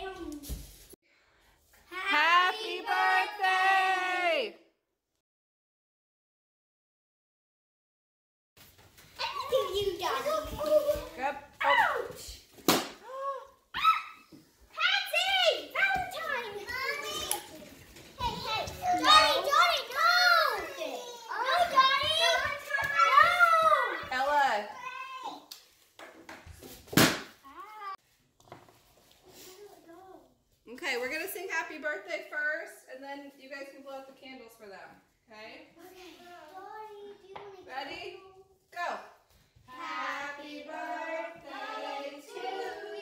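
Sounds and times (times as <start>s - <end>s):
loud sharp crack: 12.6s - 13.0s, 27.0s - 27.4s
children calling out: 13.0s - 24.1s.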